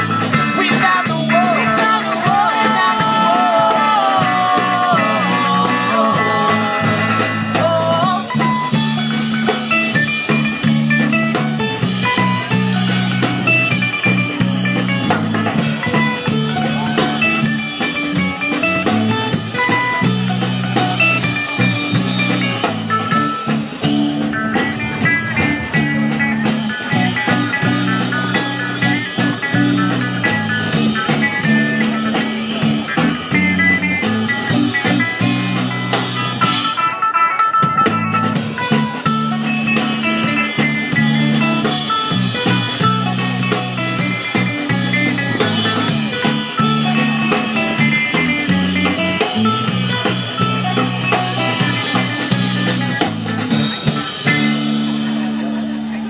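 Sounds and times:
bass guitar: 0.0s - 56.0s
drum kit: 0.0s - 56.0s
electric guitar: 0.0s - 56.0s.

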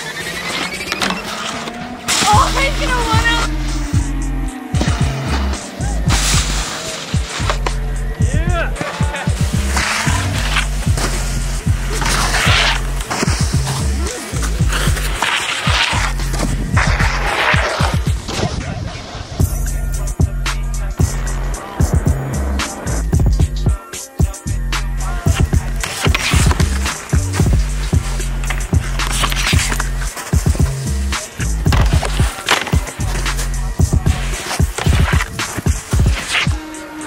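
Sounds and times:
snowboards sliding and scraping: 0.0s - 37.0s
snowboards knocking and landing: 0.4s - 3.4s, 4.7s - 19.4s, 24.9s - 36.7s
music with heavy bass line: 2.3s - 18.2s, 19.4s - 36.9s.

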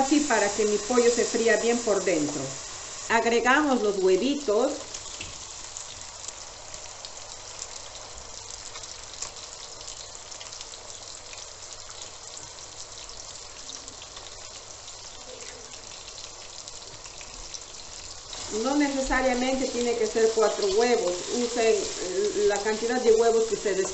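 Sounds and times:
chicken sizzling in oil: 0.0s - 23.9s.

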